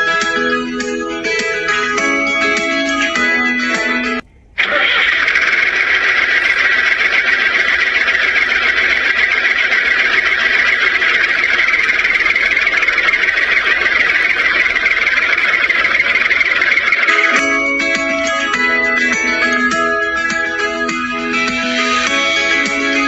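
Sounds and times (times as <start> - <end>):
toy tractor whirring: 4.6 - 19.7.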